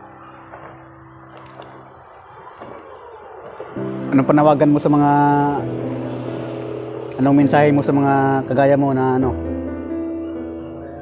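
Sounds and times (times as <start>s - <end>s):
sustained music chord: 3.8s - 11.0s.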